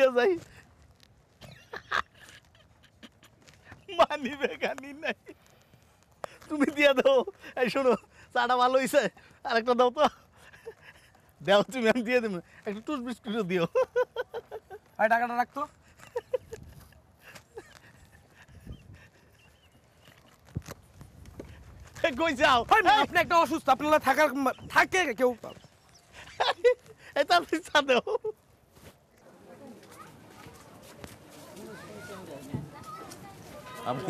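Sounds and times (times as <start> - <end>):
man's soft breathy laughter: 1.4 - 3.7, 10.2 - 11.3, 15.7 - 20.1, 26.0 - 27.2.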